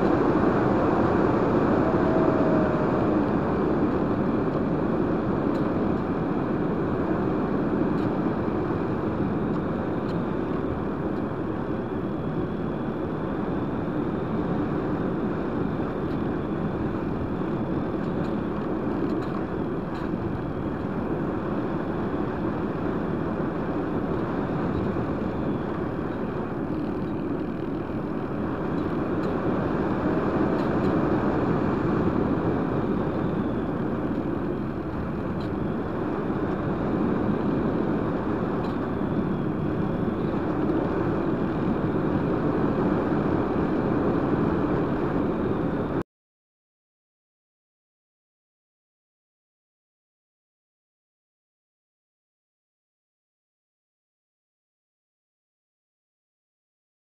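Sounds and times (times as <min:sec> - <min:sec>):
rush of airflow: 0:00.0 - 0:18.0.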